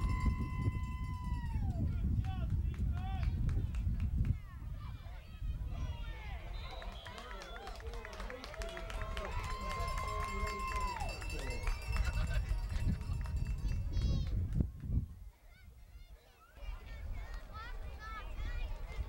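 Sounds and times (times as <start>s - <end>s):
spectators shouting and cheering: 4.8s - 12.3s.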